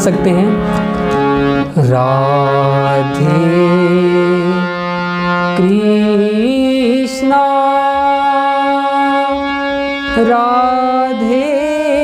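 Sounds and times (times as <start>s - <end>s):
harmonium steady note: 0.0s - 12.0s.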